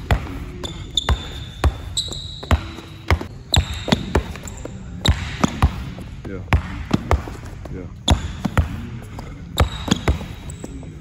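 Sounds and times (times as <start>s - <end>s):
basketball bouncing on court floor: 0.0s - 10.7s.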